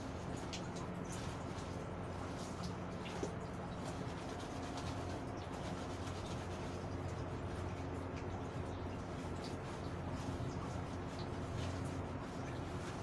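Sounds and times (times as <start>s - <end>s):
steady low hum: 0.0s - 13.0s
wet cloth rubbing and squeezing: 0.0s - 13.0s.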